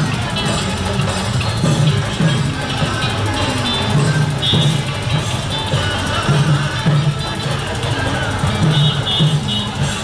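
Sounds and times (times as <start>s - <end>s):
loud percussion-led festival music: 0.0s - 10.0s.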